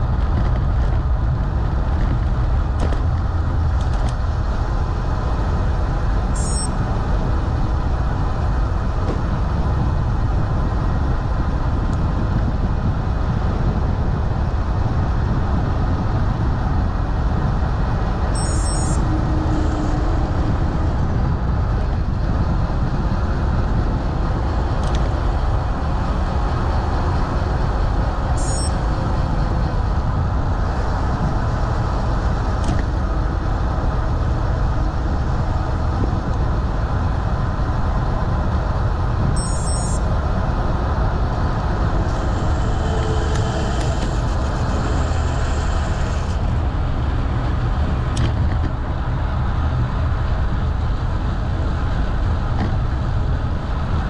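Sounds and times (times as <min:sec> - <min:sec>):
wind rushing on microphone: 0:00.0 - 0:54.0.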